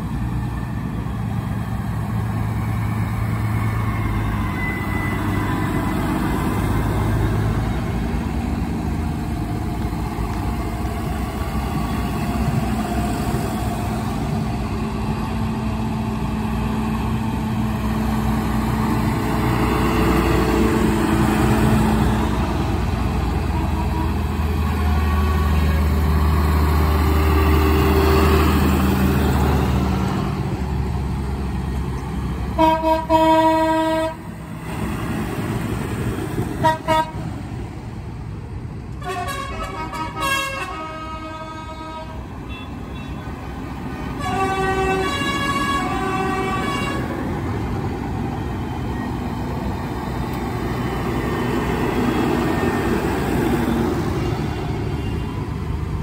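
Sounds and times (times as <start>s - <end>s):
tractor diesel engines passing: 0.0s - 56.0s
horn: 39.0s - 42.2s.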